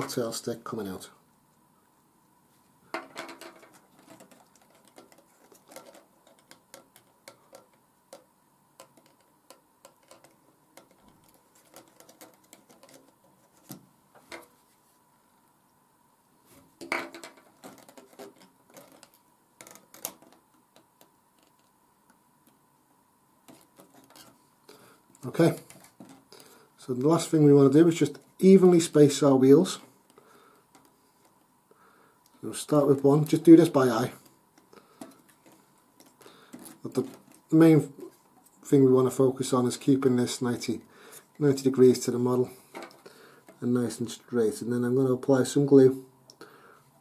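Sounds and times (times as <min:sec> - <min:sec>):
hands handling card model: 0:08.8 - 0:14.6.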